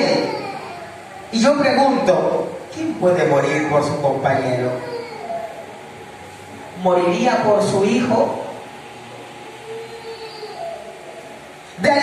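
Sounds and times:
electric fans humming: 0.0 - 12.0.

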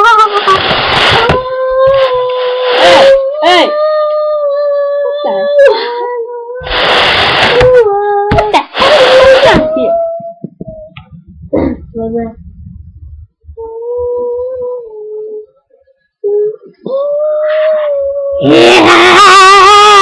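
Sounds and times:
harsh noisy bursts: 0.0 - 3.2, 6.6 - 9.8, 18.5 - 20.0.

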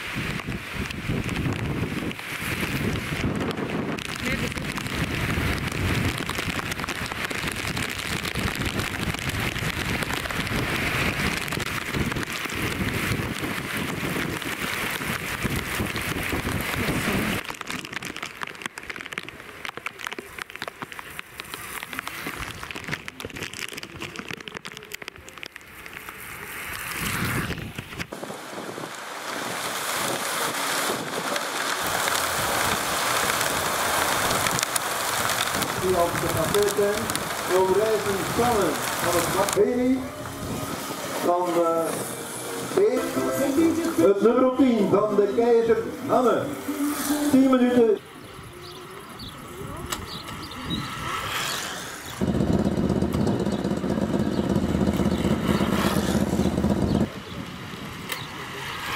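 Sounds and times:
wind buffeting microphone: 0.0 - 18.3, 26.7 - 41.4, 48.2 - 51.4, 52.0 - 58.9
rain falling on wet road: 0.0 - 58.9.

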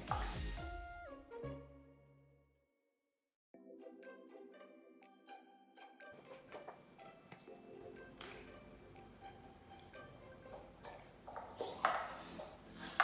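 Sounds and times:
quiet background music: 0.0 - 2.2, 3.6 - 13.0
paper cups tapping on tiled floor: 9.8 - 13.0.

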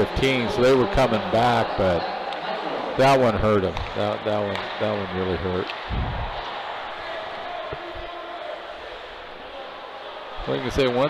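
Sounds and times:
murmur of crowd and arena: 0.0 - 11.0.

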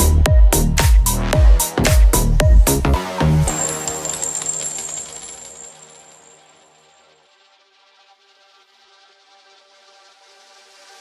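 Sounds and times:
pounding kick drum beat: 0.0 - 3.0
electronic dance music: 0.0 - 4.4
high metallic shimmer: 3.5 - 7.3.

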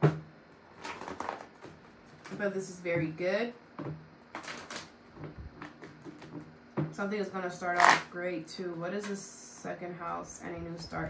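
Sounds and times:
cards being shuffled: 7.8 - 8.1.

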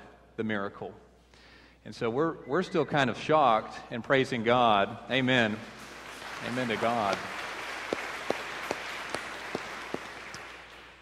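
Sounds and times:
congregation applauding: 5.1 - 11.0
close crisp hand claps: 5.8 - 11.0.

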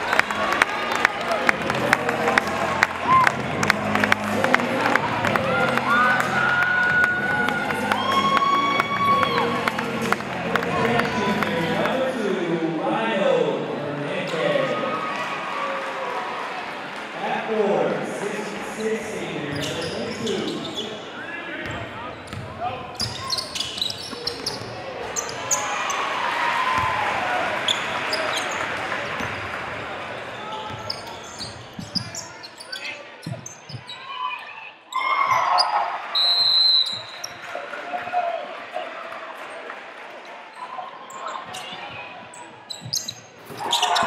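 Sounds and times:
crowd cheering: 0.0 - 12.4, 14.4 - 18.4, 24.8 - 31.4, 34.4 - 42.3, 43.5 - 44.0
basketball bouncing: 21.6 - 23.2.

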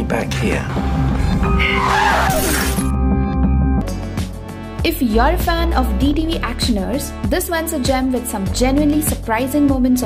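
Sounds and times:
film score music: 0.0 - 10.0.

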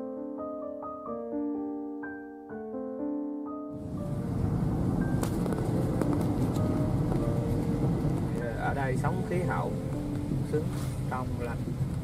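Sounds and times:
soft music: 0.0 - 11.6
road and engine rumble in car: 3.8 - 12.0.

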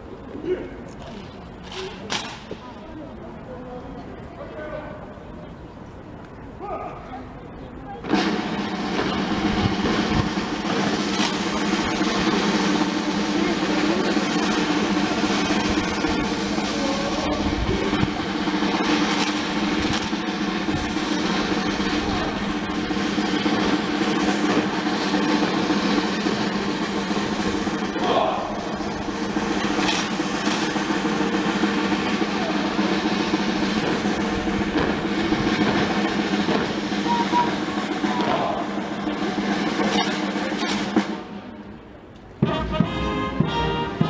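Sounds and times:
drum strokes: 8.0 - 44.0
military band music: 8.0 - 44.0.

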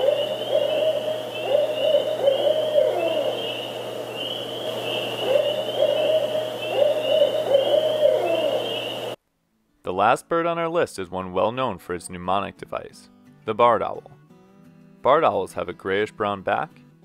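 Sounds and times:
owl hooting: 0.0 - 9.2.

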